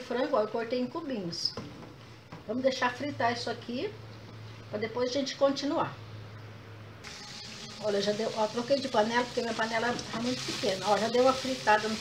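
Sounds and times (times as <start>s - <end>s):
chicken sizzling in a pan: 7.0s - 12.0s.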